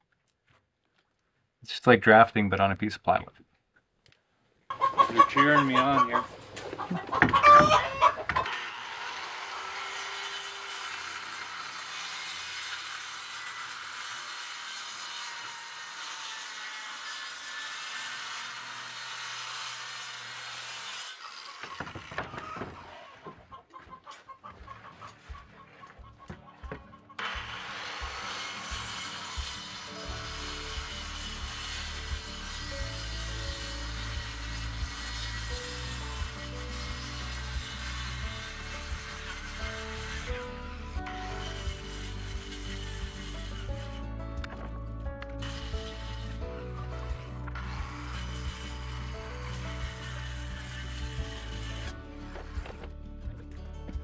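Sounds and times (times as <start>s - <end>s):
circular saw cutting plywood: 6.9s - 23.5s, 26.7s - 52.9s
background music with bass line: 30.1s - 54.0s.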